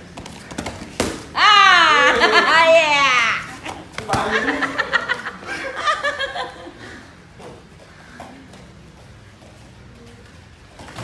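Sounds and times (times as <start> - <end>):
person laughing: 1.9 - 2.8.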